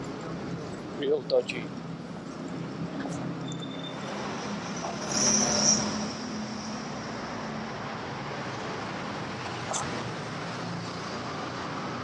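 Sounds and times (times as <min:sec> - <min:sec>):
rumble of passing vehicles: 0:00.0 - 0:12.0
loud vehicle passing: 0:04.0 - 0:12.0.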